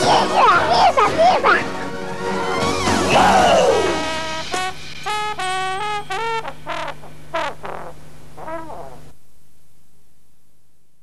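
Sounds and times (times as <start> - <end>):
faint hiss: 2.9 - 11.0.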